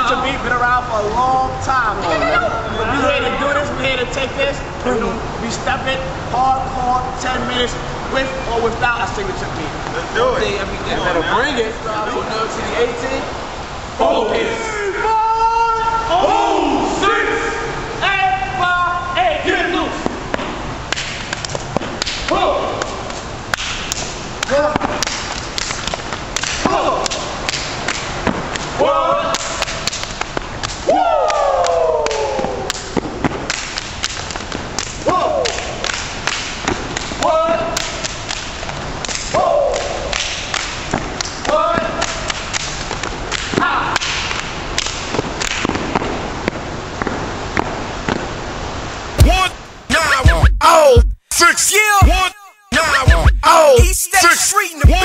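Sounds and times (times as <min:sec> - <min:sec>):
men shouting calls: 0:00.0 - 0:04.1, 0:13.9 - 0:20.0, 0:49.2 - 0:55.0.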